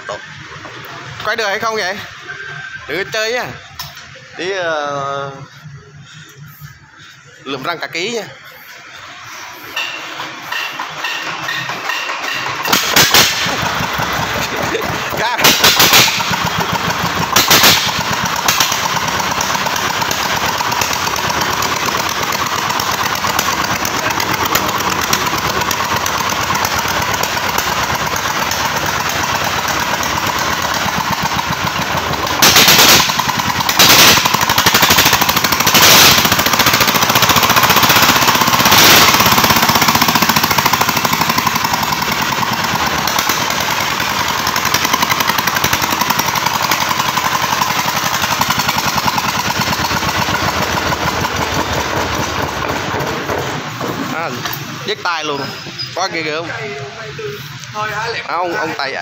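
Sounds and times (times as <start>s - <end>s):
diesel engine firing chatter: 0.0s - 59.0s.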